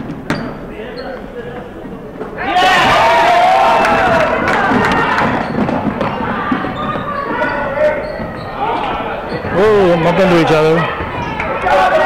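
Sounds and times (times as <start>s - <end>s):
crowd voices and shouting: 0.0s - 12.0s.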